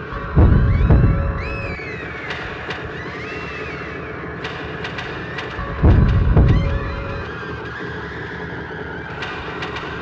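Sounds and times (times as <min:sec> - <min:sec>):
droning bed: 0:00.0 - 0:10.0
wavering high tones: 0:00.1 - 0:03.9, 0:05.6 - 0:07.6
deep heavy hits: 0:00.2 - 0:01.9, 0:05.6 - 0:07.3.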